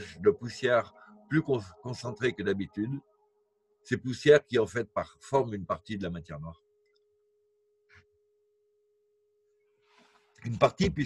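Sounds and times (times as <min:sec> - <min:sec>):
faint hum-like tone: 0:00.0 - 0:03.0.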